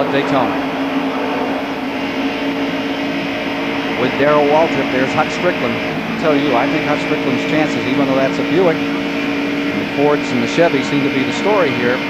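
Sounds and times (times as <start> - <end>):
race car engine running flat out: 0.0 - 12.0
road and wind noise: 0.0 - 12.0.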